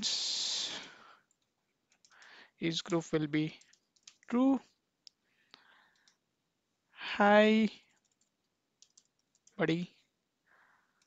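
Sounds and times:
computer keyboard key clicks: 0:03.6 - 0:04.4, 0:08.0 - 0:09.6.

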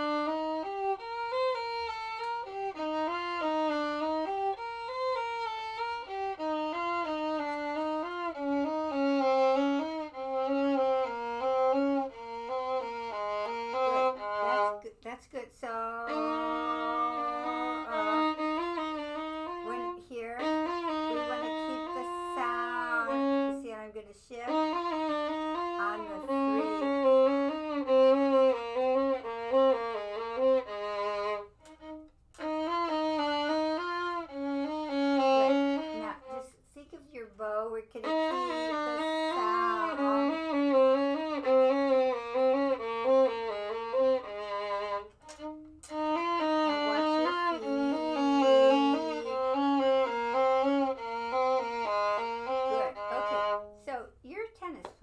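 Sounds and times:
violin playing quick notes: 0:00.0 - 0:14.9, 0:15.8 - 0:36.6, 0:38.0 - 0:53.8
second violin playing along: 0:00.0 - 0:55.0.

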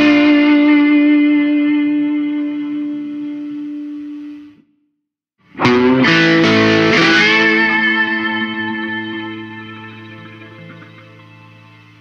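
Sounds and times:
slide guitar: 0:00.0 - 0:03.8, 0:05.5 - 0:12.0.

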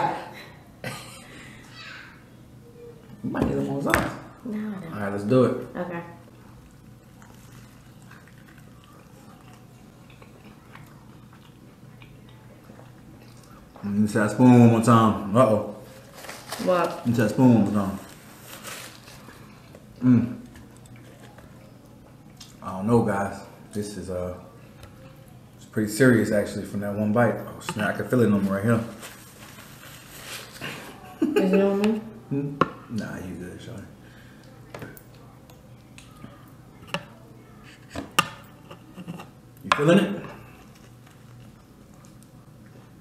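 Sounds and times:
soft tableside noise: 0:34.4 - 0:43.0.

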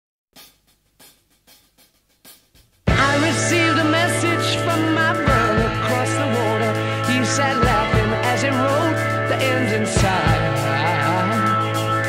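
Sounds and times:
hi-hat taps: 0:00.3 - 0:02.9.

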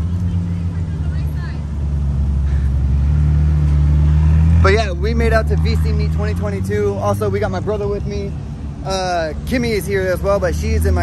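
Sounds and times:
car engine low drone: 0:00.0 - 0:11.0.

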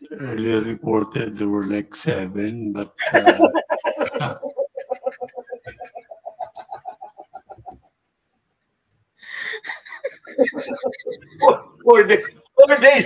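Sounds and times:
high-pitched laughter: 0:03.0 - 0:07.8, 0:09.3 - 0:11.7.

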